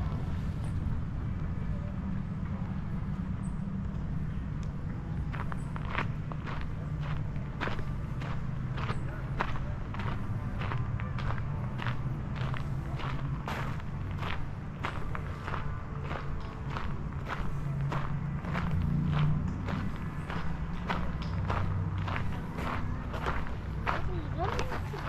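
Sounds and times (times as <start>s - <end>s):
steady low rumble: 0.0s - 25.0s
footsteps on outdoor path: 5.2s - 25.0s.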